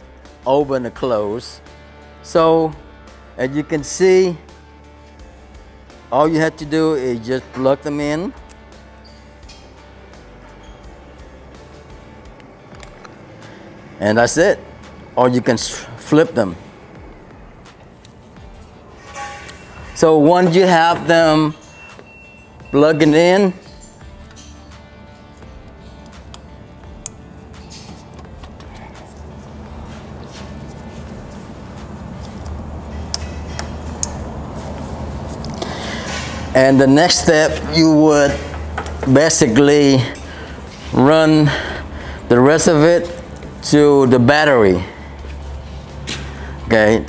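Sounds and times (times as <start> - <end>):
quiet background music: 0.0 - 47.0.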